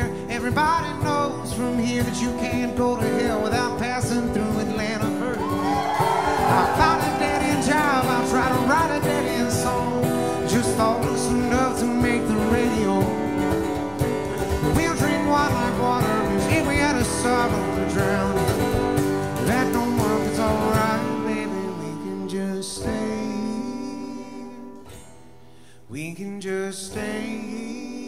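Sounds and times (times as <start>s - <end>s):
bass: 0.0s - 28.0s
strummed acoustic guitar: 0.0s - 28.0s
fiddle melody: 5.5s - 9.5s.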